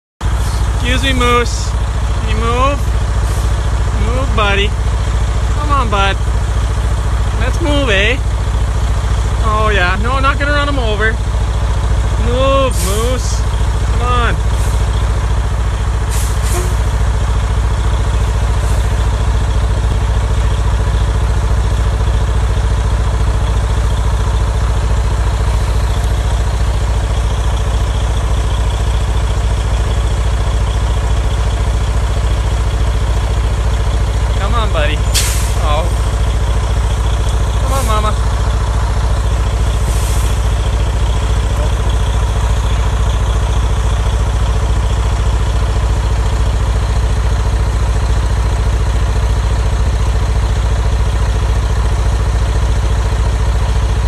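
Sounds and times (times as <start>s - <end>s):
truck engine idling: 0.2s - 54.0s.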